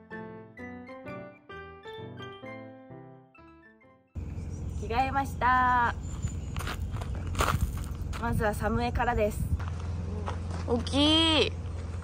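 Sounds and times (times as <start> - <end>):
footsteps on gravel: 5.6 - 12.0.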